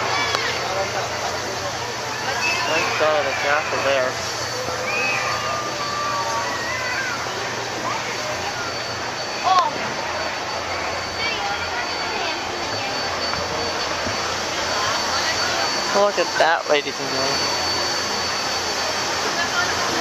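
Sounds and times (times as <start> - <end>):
people chatting: 0.0 - 20.0.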